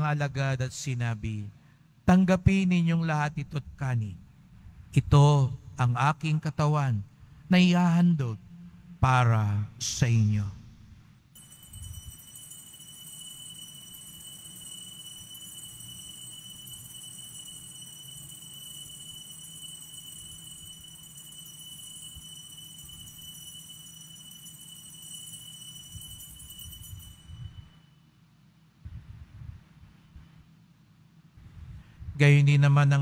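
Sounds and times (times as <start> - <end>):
altar bells jingling: 11.4 - 27.9.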